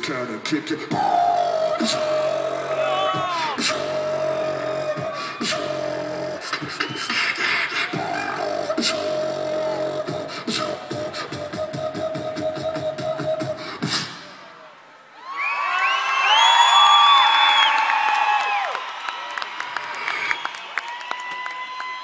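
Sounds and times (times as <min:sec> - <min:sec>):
steady vocal note: 0:00.0 - 0:14.3
beatboxing drum sounds: 0:00.0 - 0:14.5.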